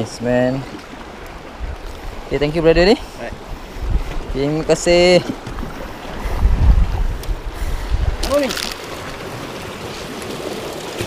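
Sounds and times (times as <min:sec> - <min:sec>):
sea waves washing against rocks: 0:00.0 - 0:11.0.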